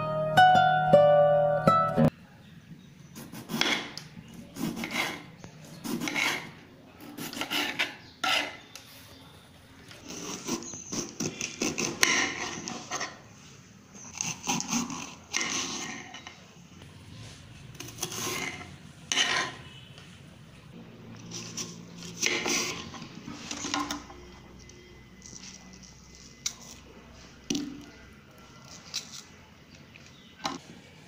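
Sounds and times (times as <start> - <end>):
knife slicing tomato: 3.2 - 8.6, 17.8 - 19.7
knife scraping cutting board: 3.2 - 8.7, 10.0 - 13.2, 14.0 - 16.3, 17.8 - 19.8, 21.2 - 24.0.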